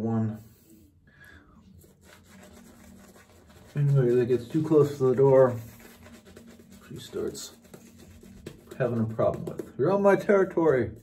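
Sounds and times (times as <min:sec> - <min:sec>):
shaving brush scrubbing lather: 0:01.7 - 0:11.0.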